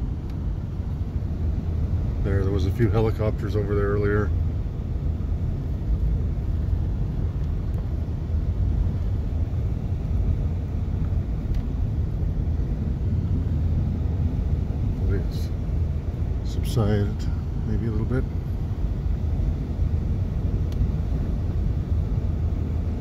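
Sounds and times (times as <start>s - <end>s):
truck engine and road rumble: 0.0s - 23.0s.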